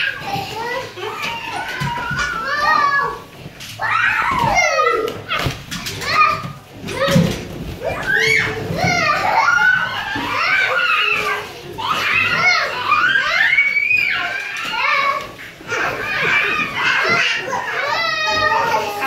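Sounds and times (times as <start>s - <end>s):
young children squealing: 7.8s - 15.0s.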